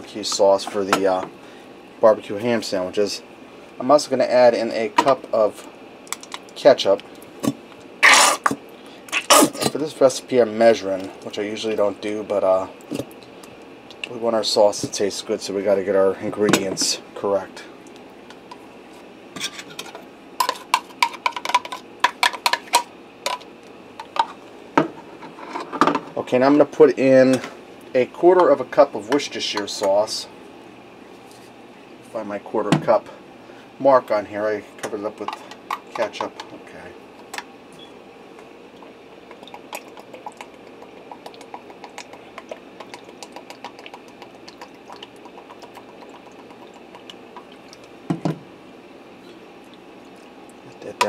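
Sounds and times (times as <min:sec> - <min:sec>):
sauce pouring clicks and glugs: 0:38.8 - 0:48.3.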